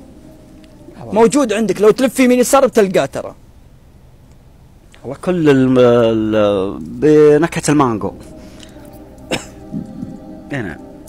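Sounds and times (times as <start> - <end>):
faint steady hum: 0.0 - 11.0
man coughing: 9.2 - 9.8.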